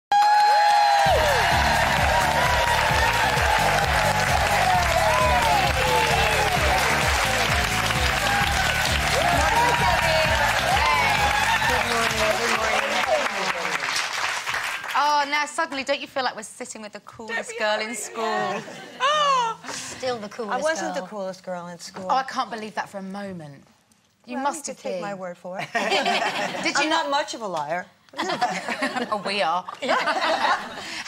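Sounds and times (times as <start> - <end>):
audience applauding and cheering: 0.1 - 15.2.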